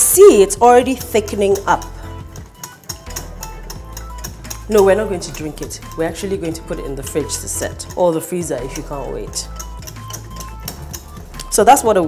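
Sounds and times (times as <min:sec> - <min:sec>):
background music with bass: 0:00.0 - 0:12.0
whisk beating in glass bowl: 0:00.0 - 0:12.0.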